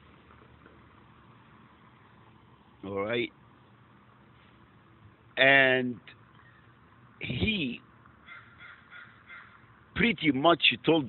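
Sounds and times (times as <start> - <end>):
crow cawing faintly: 8.2 - 9.8.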